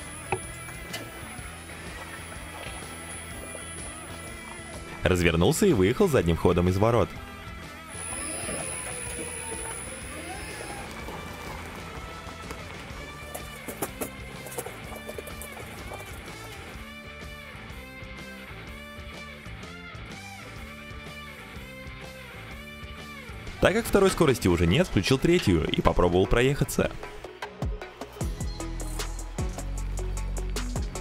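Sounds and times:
background music with bass line: 0:00.0 - 0:31.0.

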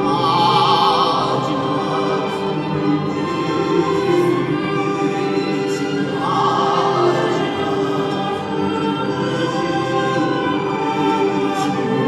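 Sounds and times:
choir singing held chords: 0:00.0 - 0:12.0
string quartet: 0:00.0 - 0:12.0.

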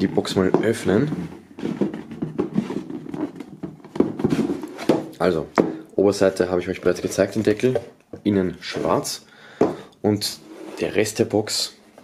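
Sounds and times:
hands tapping and scraping cardboard: 0:00.2 - 0:05.8.

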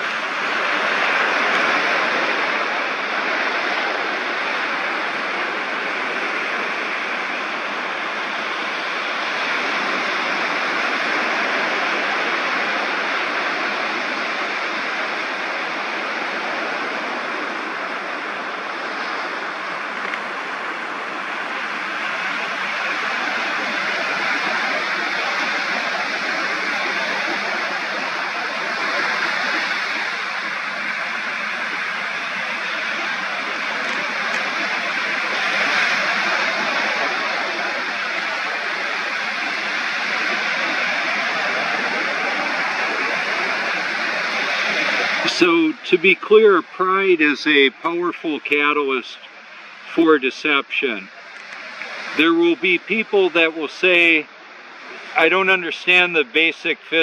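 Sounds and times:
ocean waves breaking on beach: 0:00.0 - 0:57.0.

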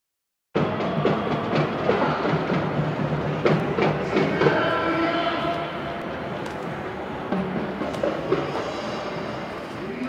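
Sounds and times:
crowd noise: 0:00.6 - 0:10.0
marching band drums: 0:00.6 - 0:10.0.

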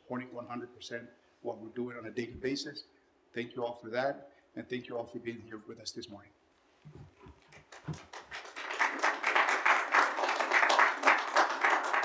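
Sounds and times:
crowd clapping: 0:07.4 - 0:12.0.

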